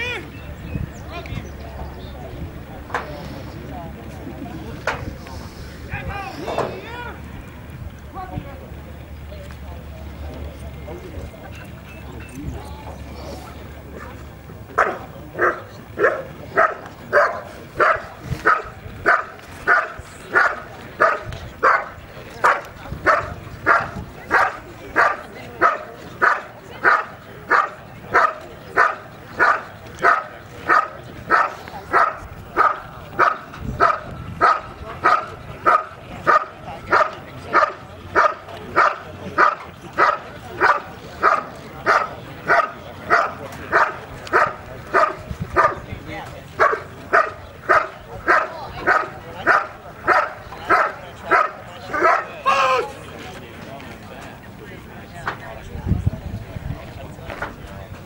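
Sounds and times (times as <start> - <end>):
dog barking: 14.8 - 45.8, 46.6 - 52.3.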